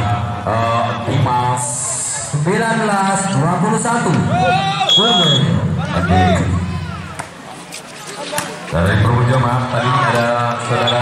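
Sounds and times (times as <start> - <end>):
crowd murmur: 0.0 - 11.0
short high whistle: 4.8 - 5.5.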